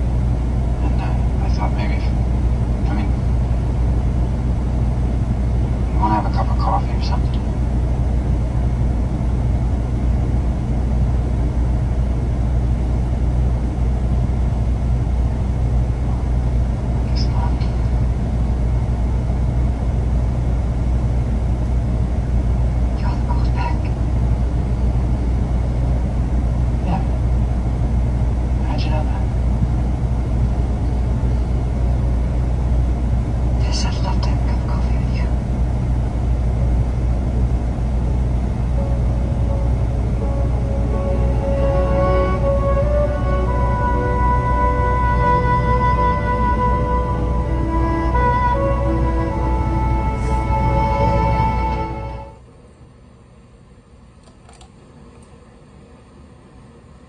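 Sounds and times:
truck engine idling: 0.0 - 52.4.

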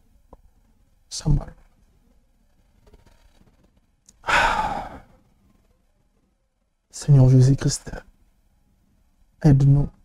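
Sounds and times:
man sighing heavily: 4.2 - 5.1.

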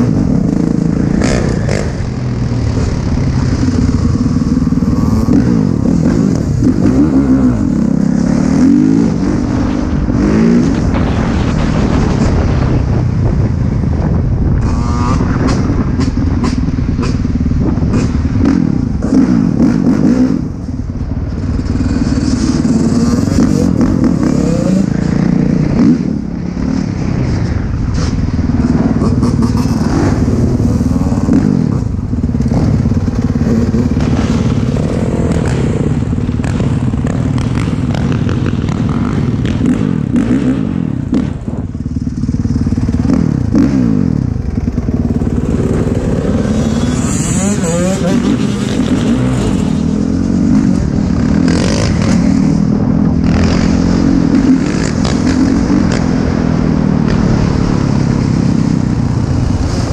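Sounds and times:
dirt bike engine revving: 0.0 - 12.8, 14.6 - 20.6, 21.4 - 59.9
wind noise on microphone: 0.0 - 59.9.

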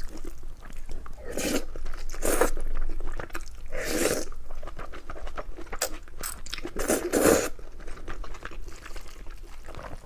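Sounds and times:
wet chewing and mouth sounds: 0.0 - 10.0.

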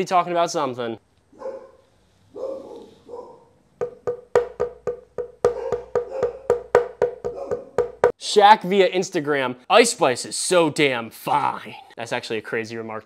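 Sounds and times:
muffled dog barks: 1.4 - 3.5, 5.5 - 6.6, 7.3 - 7.8
percussive music beat with wood block: 3.8 - 8.2.

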